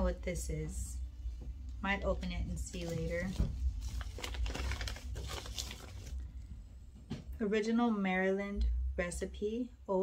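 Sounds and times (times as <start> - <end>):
snack packet crinkling: 3.7 - 6.2.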